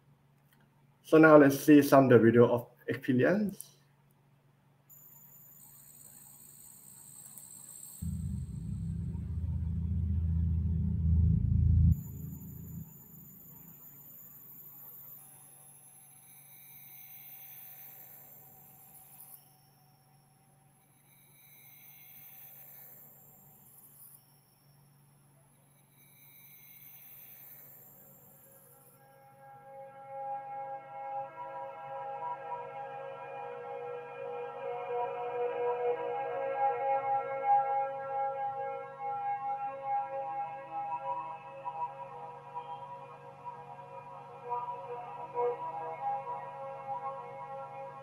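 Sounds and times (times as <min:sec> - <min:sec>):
faint steady tone: 0:04.6 - 0:29.7
ringing pitched tones: 0:05.0 - 0:16.6
deep low drone: 0:08.0 - 0:14.1
electronic swells: 0:08.0 - 0:19.7.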